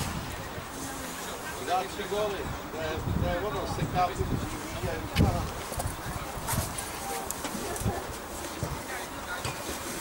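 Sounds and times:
distant indistinct voices: 0.0s - 10.0s.

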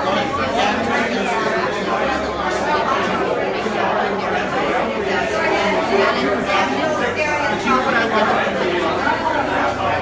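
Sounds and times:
crowd of people talking: 0.0s - 10.0s.

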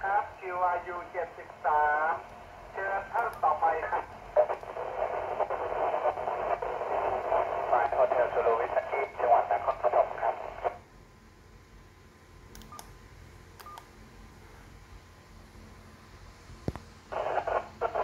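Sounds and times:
voice over radio speaker: 0.0s - 10.8s, 17.1s - 18.0s.

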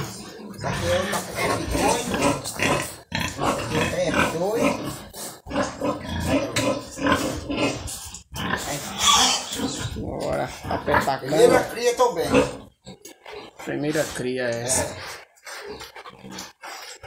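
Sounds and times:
pig grunting: 0.0s - 17.0s.

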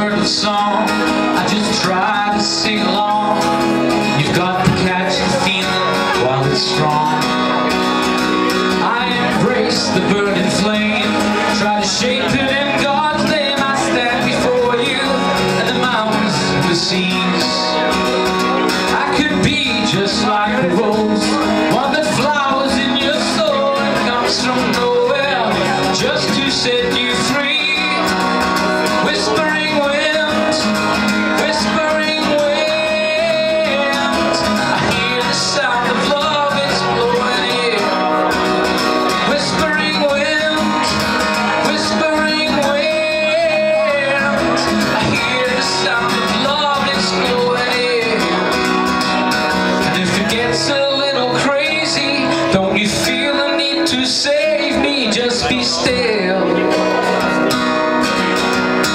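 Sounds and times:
acoustic guitar strumming: 0.0s - 58.9s
man singing: 0.0s - 58.9s.

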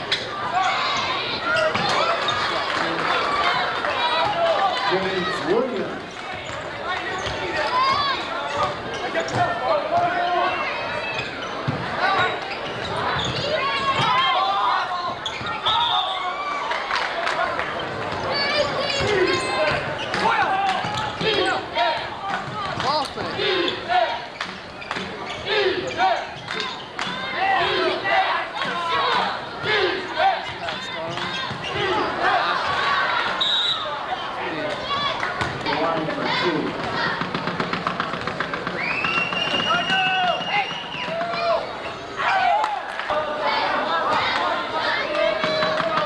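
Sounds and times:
hubbub of indistinct voices: 0.0s - 46.0s.

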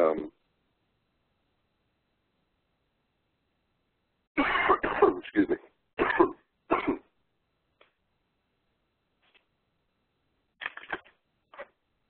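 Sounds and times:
man coughing loudly: 4.4s - 7.1s.

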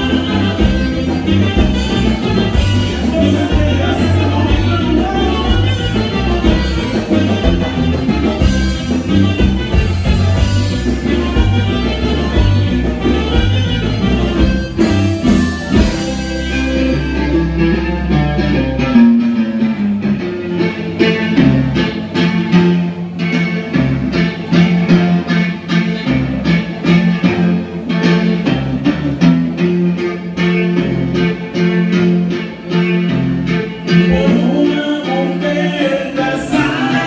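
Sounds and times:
drum kit beat: 0.0s - 19.7s
bass line: 0.0s - 37.0s
electric guitar: 0.0s - 37.0s.

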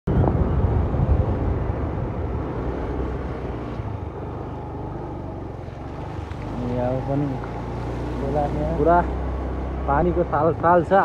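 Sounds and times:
vehicle engine running: 0.2s - 11.0s.

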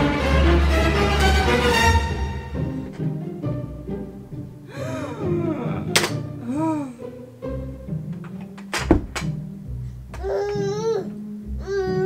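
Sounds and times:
background music: 0.0s - 12.0s
sharp knocks: 8.7s - 9.4s
toddler playing with plastic toys: 10.1s - 12.0s
baby vocal sounds: 10.2s - 12.0s.

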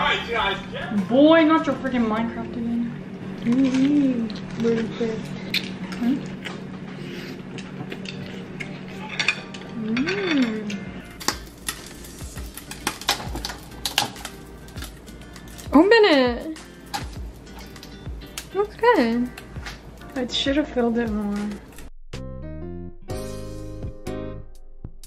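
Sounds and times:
background music: 0.0s - 5.4s, 7.0s - 25.0s
waffle maker clicks and clatter: 11.2s - 15.7s.

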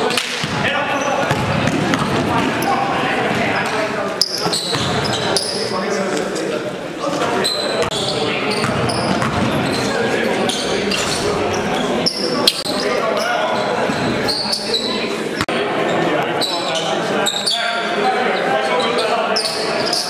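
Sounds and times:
players' voices: 0.0s - 20.0s.

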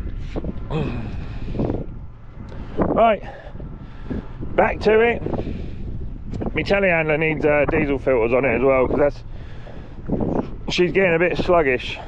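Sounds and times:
wind buffeting microphone: 0.0s - 12.0s
person sighing: 0.7s - 1.4s.

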